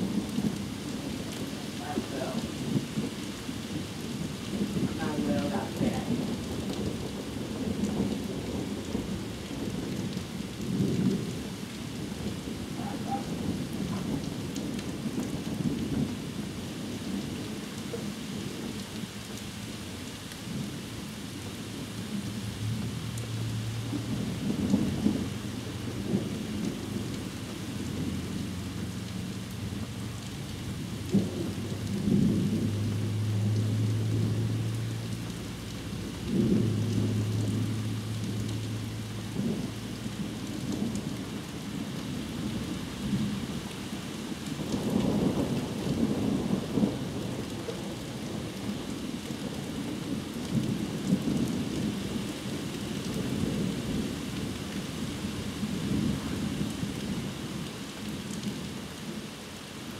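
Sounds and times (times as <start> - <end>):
thunder rumbling: 0.0 - 18.8, 21.4 - 43.9, 44.5 - 58.2
heavy rain falling: 0.0 - 59.9.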